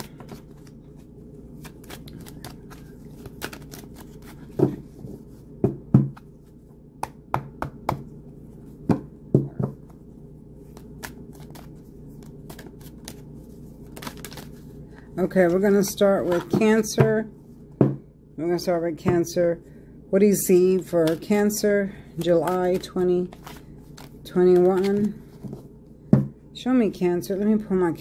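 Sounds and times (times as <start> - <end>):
cards being shuffled: 0.0 - 5.3, 10.6 - 14.7, 21.0 - 21.4, 22.2 - 25.7.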